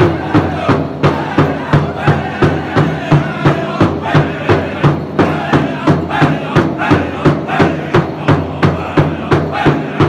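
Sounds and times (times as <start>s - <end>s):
bass drum beating: 0.0s - 10.0s
men chanting: 0.0s - 10.0s.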